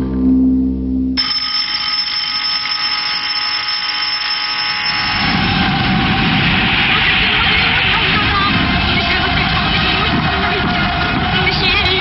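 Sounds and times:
ringing alarm tones: 0:01.2 - 0:11.4
dense wash of noise: 0:04.6 - 0:12.0.

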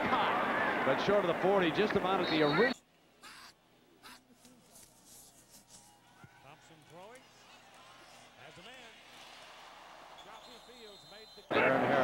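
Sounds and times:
background hiss: 0:02.0 - 0:06.1.

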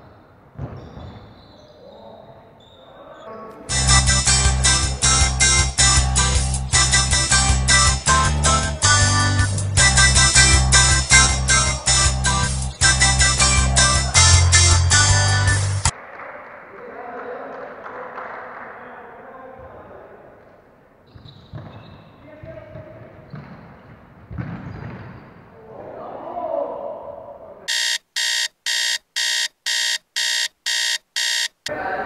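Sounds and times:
murmur of voices: 0:11.2 - 0:15.4, 0:31.7 - 0:32.0
short electronic beeps: 0:27.7 - 0:31.7.

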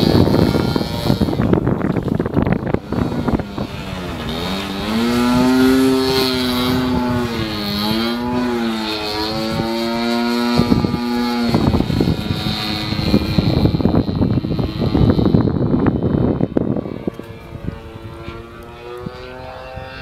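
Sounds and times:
model plane motor droning: 0:00.0 - 0:20.0
wind noise on microphone: 0:00.0 - 0:20.0.

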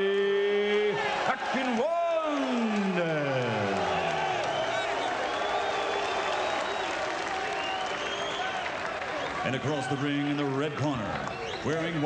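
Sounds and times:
crowd applauding and cheering: 0:00.0 - 0:12.0.

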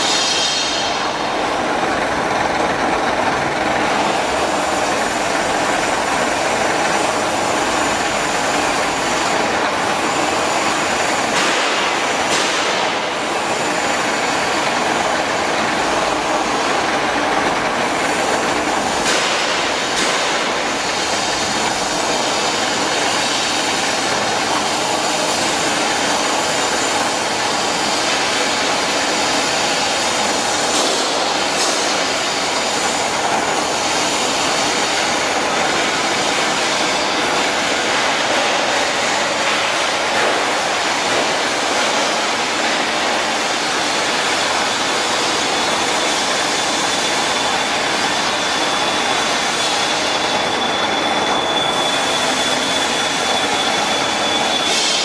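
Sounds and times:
lathe rumbling and rattling: 0:00.0 - 0:55.0.

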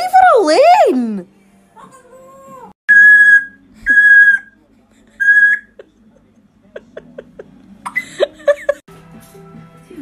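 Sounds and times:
parrot whistling: 0:02.9 - 0:04.6, 0:05.2 - 0:05.8.

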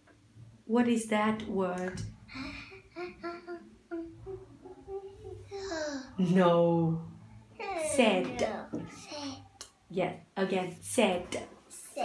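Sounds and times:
girl humming: 0:02.3 - 0:06.2.

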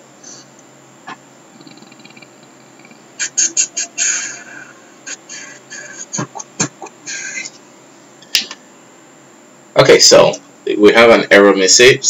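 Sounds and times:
bird chirping: 0:01.5 - 0:07.6.

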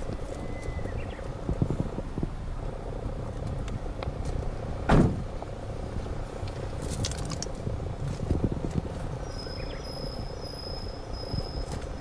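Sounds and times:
steady low rumble: 0:00.0 - 0:12.0
car door shutting thump: 0:04.8 - 0:05.2.

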